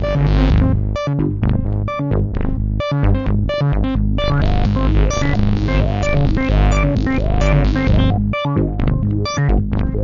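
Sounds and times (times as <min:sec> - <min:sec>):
synthesizer sequence over deep bass: 0:00.0 - 0:10.0.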